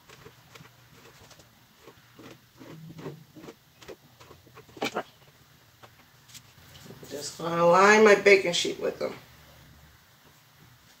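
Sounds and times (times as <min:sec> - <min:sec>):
knife cutting dough on a mat: 0:00.0 - 0:05.1.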